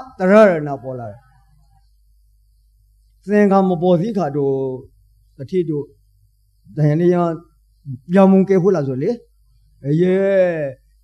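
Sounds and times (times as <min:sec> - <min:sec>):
man speaking: 0:00.0 - 0:01.2, 0:03.2 - 0:06.0, 0:06.7 - 0:10.8
faint low room hum: 0:00.0 - 0:11.0.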